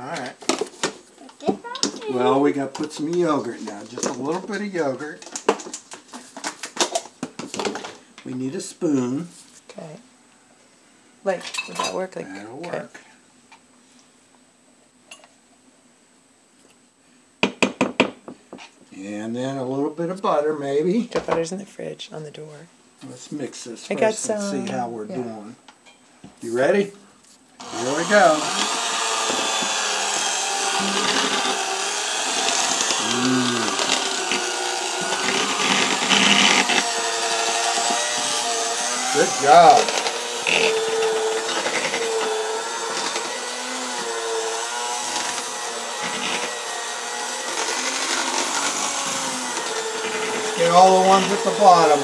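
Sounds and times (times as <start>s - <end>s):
electric mixer whipping potatoes: 27.6s - 52.0s.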